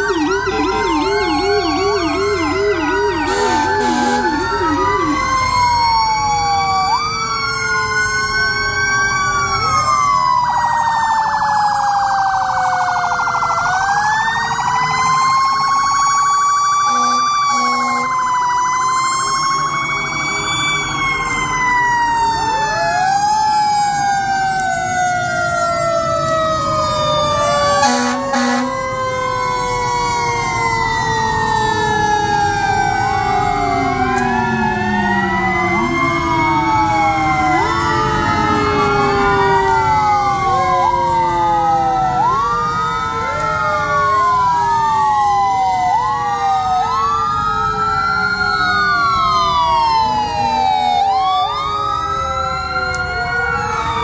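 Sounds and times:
fire truck sirens wailing: 0:00.0 - 0:54.0
brief loud horn blast: 0:03.3 - 0:04.3.

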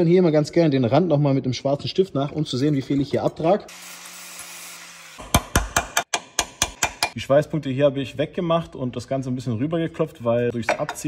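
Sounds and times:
hammer striking steel: 0:05.2 - 0:07.2.

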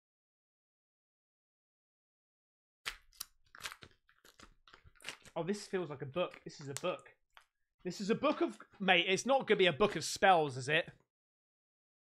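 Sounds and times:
wrapping paper tearing: 0:02.9 - 0:05.7.

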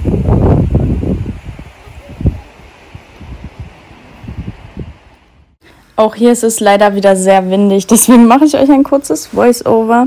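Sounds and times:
wind buffeting microphone: 0:00.0 - 0:05.6.

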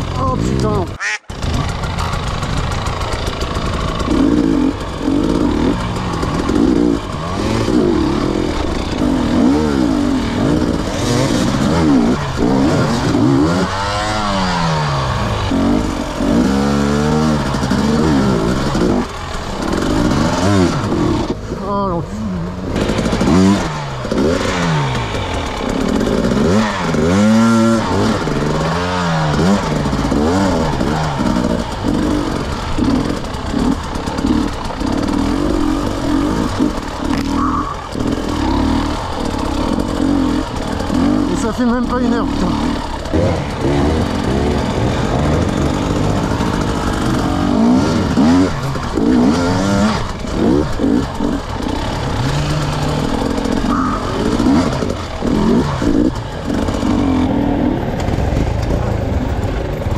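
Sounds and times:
motorcycle engine revving: 0:00.0 - 0:59.9.

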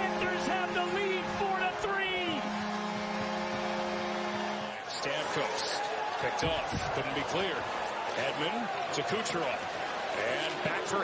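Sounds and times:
commentator speaking: 0:00.0 - 0:02.4
arena goal horn: 0:00.0 - 0:05.8.

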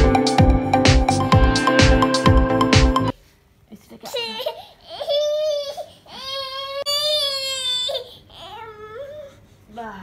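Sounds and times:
baby crying: 0:04.1 - 0:09.4.

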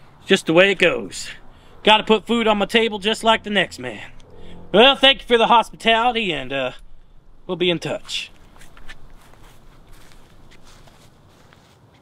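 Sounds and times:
footsteps on grass: 0:07.9 - 0:12.0.

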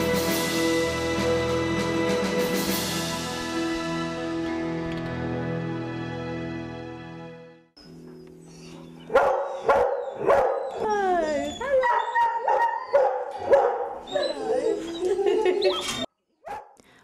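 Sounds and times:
dogs barking and whining: 0:07.8 - 0:16.8.

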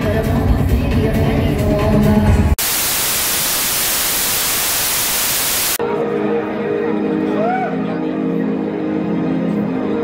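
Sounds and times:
music: 0:00.0 - 0:02.6, 0:05.8 - 0:10.0
white noise static hiss: 0:02.6 - 0:05.8.

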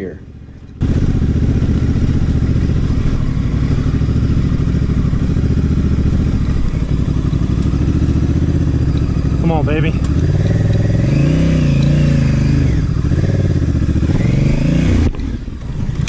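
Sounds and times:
motorcycle engine running: 0:00.0 - 0:16.0.

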